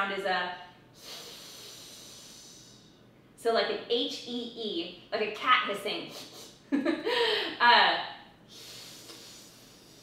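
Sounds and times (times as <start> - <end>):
woman hissing breath through teeth: 1.0 - 3.0, 8.5 - 10.0.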